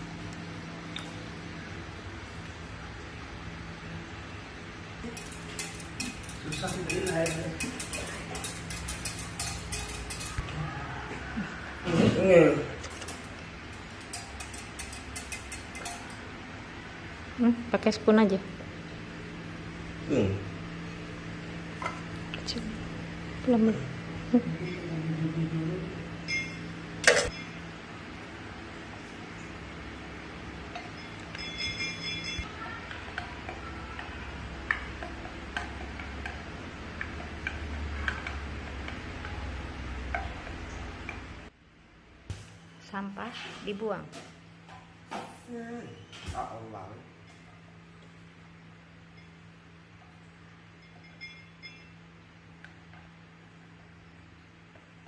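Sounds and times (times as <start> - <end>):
steady low hum: 0.0 - 55.0
wire whisk scraping a saucepan: 5.0 - 10.5, 14.0 - 16.2
utensil stirring in glass pan: 5.0 - 10.6, 13.8 - 16.2
short ringing tone: 26.2 - 27.6, 30.9 - 32.5, 50.7 - 52.0.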